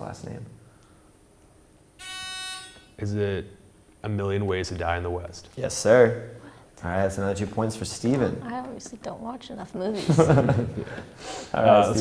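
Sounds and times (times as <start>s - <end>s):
game-show buzzer tone: 2.0s - 3.1s.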